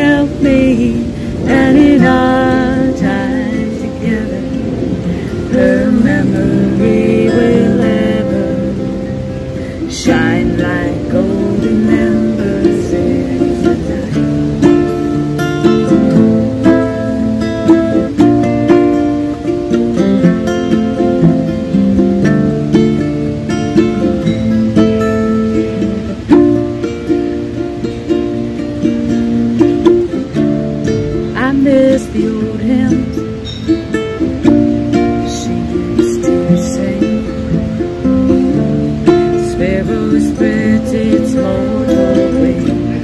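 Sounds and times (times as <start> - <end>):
acoustic guitar: 0.0 - 43.0
ukulele strumming: 0.0 - 43.0.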